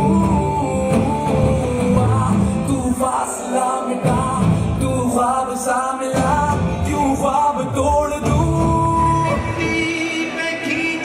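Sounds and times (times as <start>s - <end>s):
loud song playing: 0.0s - 11.0s.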